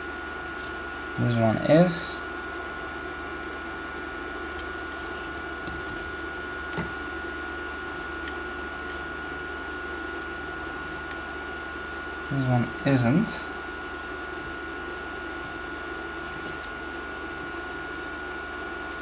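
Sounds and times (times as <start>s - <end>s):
faint constant whine: 0.0s - 19.0s
fan-like whir and hiss: 0.0s - 19.0s.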